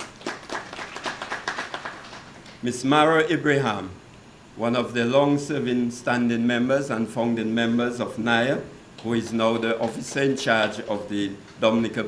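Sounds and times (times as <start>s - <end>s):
audience applauding: 0.0s - 2.6s.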